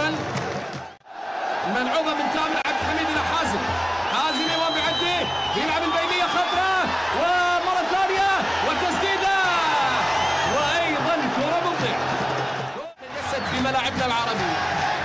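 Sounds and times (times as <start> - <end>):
male commentator talking: 1.6 - 12.1, 12.8 - 14.8.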